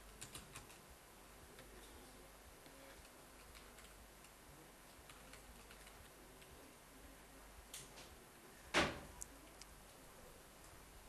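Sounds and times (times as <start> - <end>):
low steady hum: 0.0 - 11.0
keystrokes on computer keyboard: 0.1 - 0.8, 2.9 - 4.4, 5.0 - 6.1.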